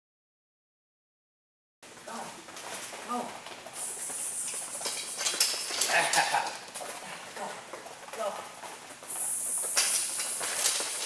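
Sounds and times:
weave poles clicking: 0:02.0 - 0:11.0.

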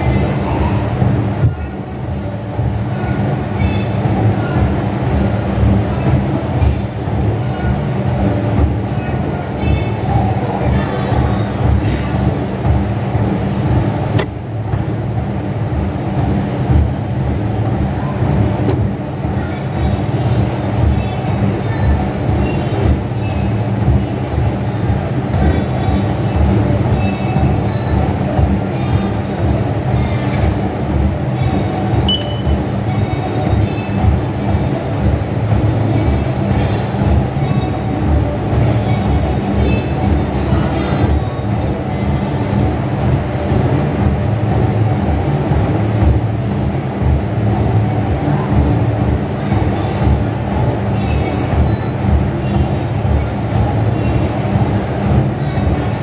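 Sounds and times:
exercise machine rumbling: 0:00.0 - 0:56.0
music playing: 0:00.0 - 0:56.0.

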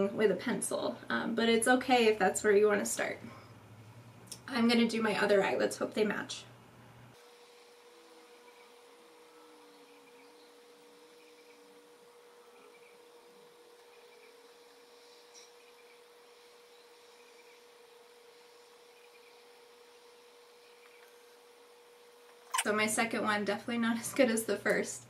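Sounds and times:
thin steady hum: 0:00.0 - 0:25.0.

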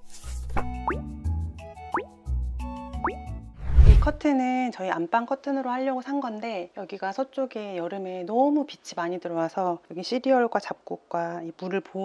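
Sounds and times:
playful background music: 0:00.2 - 0:03.6.

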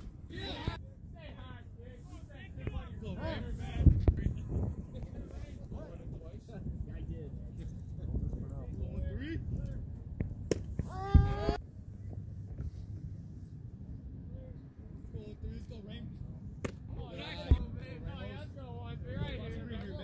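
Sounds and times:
bat cracking ball: 0:10.5 - 0:10.9
person shouting: 0:10.8 - 0:11.6.

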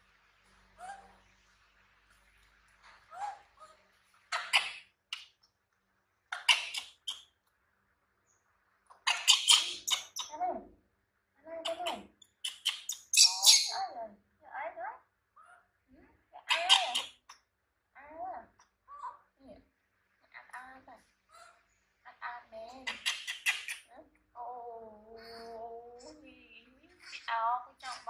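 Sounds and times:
baby monkey squeaking: 0:06.3 - 0:07.3, 0:09.0 - 0:10.4, 0:11.7 - 0:13.8, 0:22.7 - 0:24.0.

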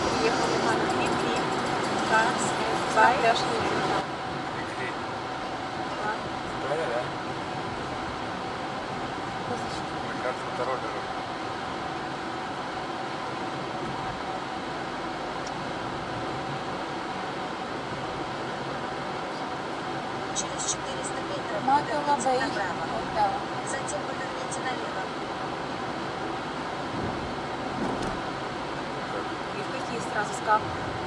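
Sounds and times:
car engine and tyre noise: 0:00.0 - 0:31.0.

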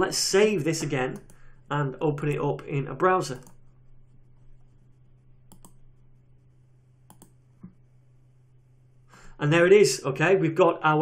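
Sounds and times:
low steady hum: 0:00.0 - 0:11.0
computer mouse clicks: 0:00.8 - 0:01.5, 0:03.3 - 0:03.7, 0:05.5 - 0:05.9, 0:07.0 - 0:07.8.

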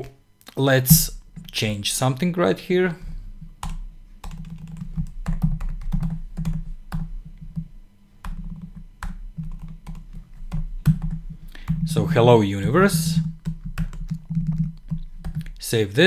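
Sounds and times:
keyboard typing: 0:03.6 - 0:15.6.

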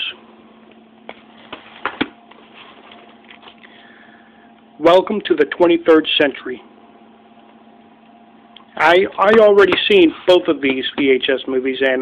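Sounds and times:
electrical hum: 0:00.0 - 0:12.0
tape box knocks and rubs: 0:01.1 - 0:02.4.

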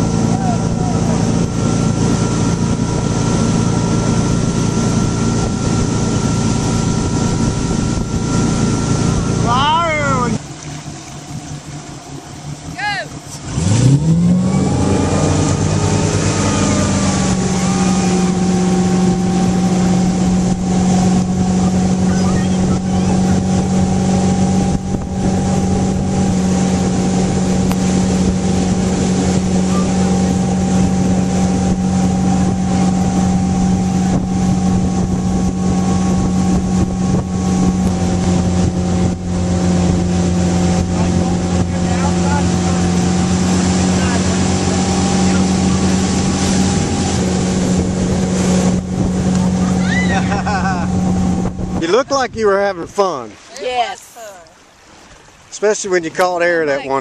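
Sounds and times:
motorboat engine revving: 0:00.0 - 0:57.0
rushing water: 0:00.0 - 0:57.0.

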